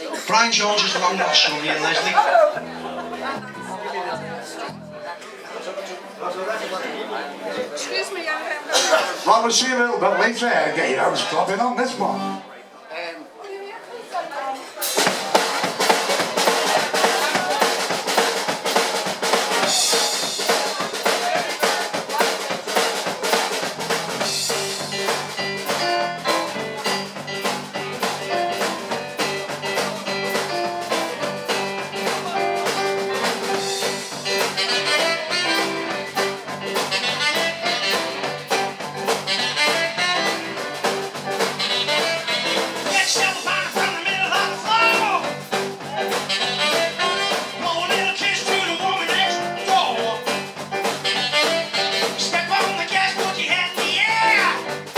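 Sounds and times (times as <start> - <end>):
drum kit beat: 0.0 - 4.9, 14.8 - 54.9
rock and roll band instrumental: 0.0 - 5.0, 8.7 - 12.5, 14.6 - 54.9
keyboard: 14.8 - 54.9.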